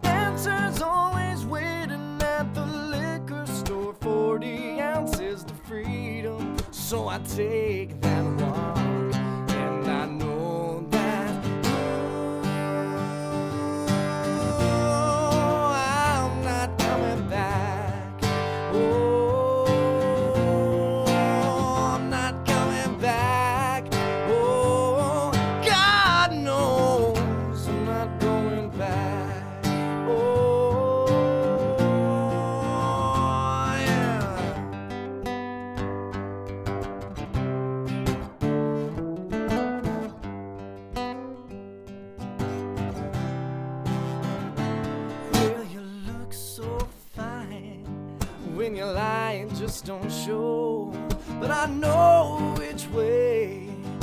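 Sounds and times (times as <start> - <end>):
strummed acoustic guitar: 0.0 - 54.0
man singing held notes: 9.7 - 18.1.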